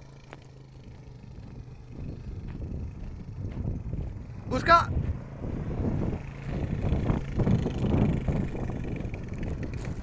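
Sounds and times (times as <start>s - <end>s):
quad bike engine running: 0.0s - 10.0s.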